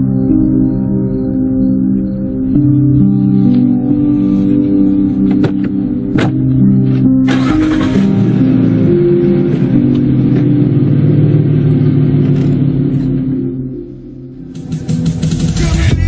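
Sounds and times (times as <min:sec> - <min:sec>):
background music: 0:00.0 - 0:16.0
music with sharp beats: 0:05.2 - 0:12.6, 0:14.4 - 0:16.0
car engine pulling away: 0:06.2 - 0:16.0.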